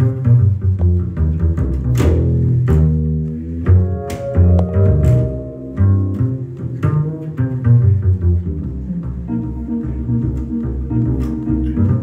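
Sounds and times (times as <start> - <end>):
double bass plucked: 0.0 - 12.0
keyboard striking chords: 3.9 - 6.5.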